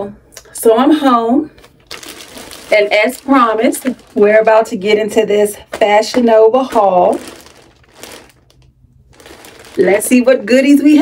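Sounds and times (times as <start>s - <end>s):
plastic bag crinkling: 1.5s - 11.0s.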